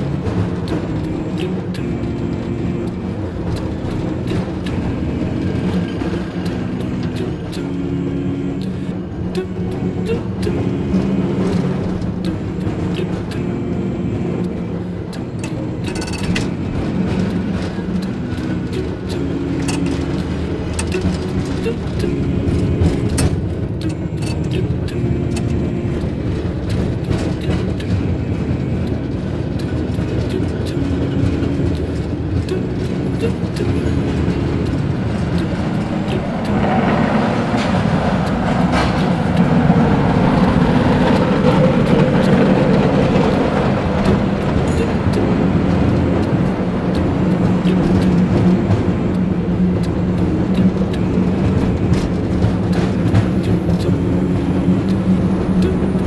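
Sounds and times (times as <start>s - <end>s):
faint hum: 0.0s - 56.0s
gondola cabin rumble: 0.0s - 56.0s
clicks and rattles: 14.4s - 22.2s.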